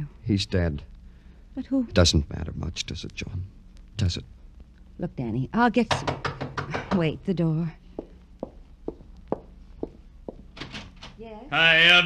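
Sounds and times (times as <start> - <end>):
footsteps crossing a floor: 7.9 - 10.7
door opening: 10.5 - 11.2.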